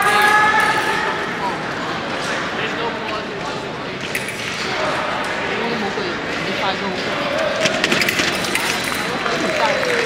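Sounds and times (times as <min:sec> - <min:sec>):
crowd voices in echoing hall: 0:00.0 - 0:10.0.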